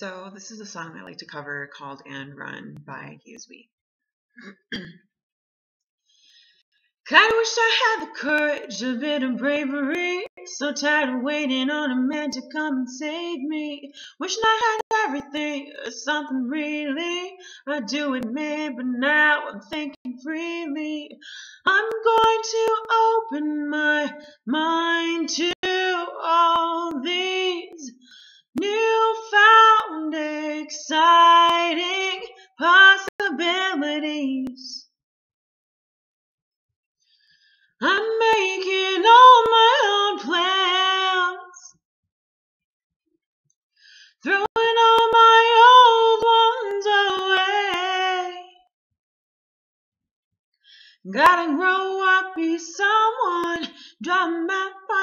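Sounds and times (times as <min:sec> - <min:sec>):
woman clearing her throat: 0:04.4 - 0:05.0
woman singing unaccompanied: 0:07.1 - 0:28.0, 0:28.6 - 0:34.8, 0:37.8 - 0:41.7, 0:44.2 - 0:48.6, 0:51.1 - 0:55.0.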